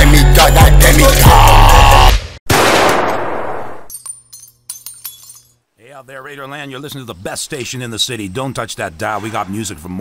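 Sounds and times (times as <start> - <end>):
music: 0.0 - 2.2.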